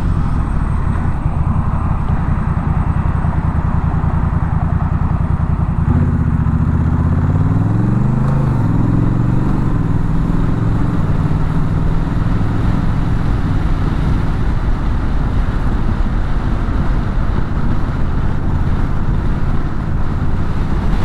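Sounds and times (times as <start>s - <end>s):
wind noise rushing: 0.0s - 4.4s, 7.6s - 21.0s
motorcycle engine pulling away: 0.0s - 17.0s.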